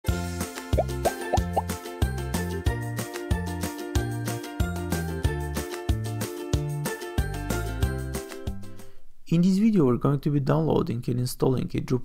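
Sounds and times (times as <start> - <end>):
upbeat music with bouncy bass: 0.4 - 8.6
rising plop sounds: 0.8 - 1.7.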